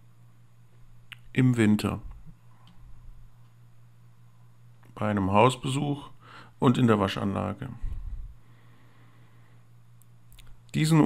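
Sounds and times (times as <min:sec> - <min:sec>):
faint background hiss: 0:00.0 - 0:11.0
low electrical hum: 0:00.0 - 0:11.0.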